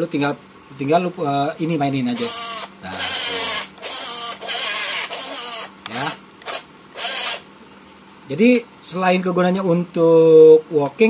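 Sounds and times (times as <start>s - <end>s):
electric motors and gears whirring: 2.1s - 7.5s.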